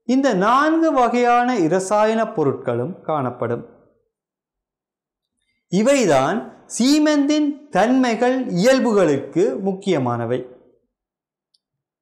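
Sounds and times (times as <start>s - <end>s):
man lecturing: 0.0s - 3.8s, 5.7s - 10.6s.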